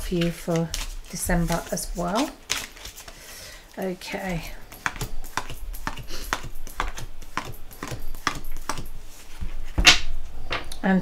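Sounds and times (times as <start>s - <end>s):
cards being shuffled: 0.0s - 3.2s, 4.1s - 9.6s.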